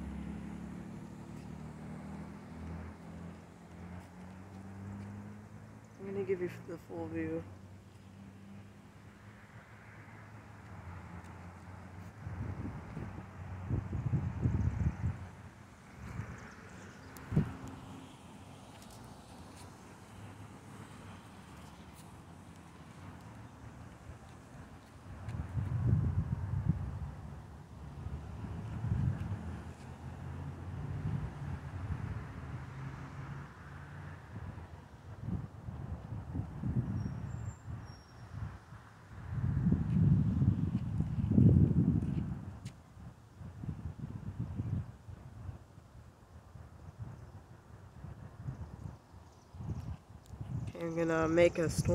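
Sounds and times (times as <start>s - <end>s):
wind gusting on microphone: 12.0s - 18.0s, 23.6s - 32.8s, 34.2s - 51.9s.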